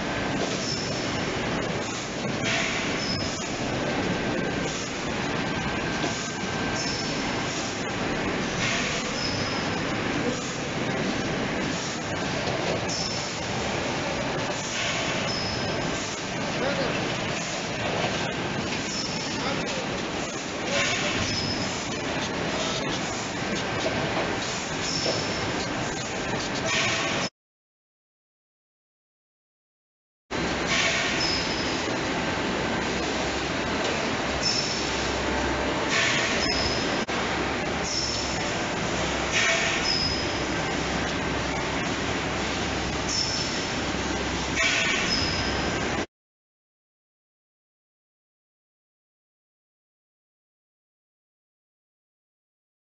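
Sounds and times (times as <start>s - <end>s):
bottling machinery clatter and hiss: 0.0s - 27.3s, 30.4s - 46.0s.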